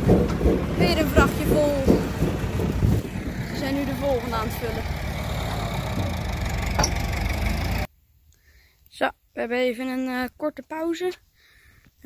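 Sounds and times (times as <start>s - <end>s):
conveyor belt rumble: 0.0s - 7.9s
low engine drone: 0.0s - 7.9s.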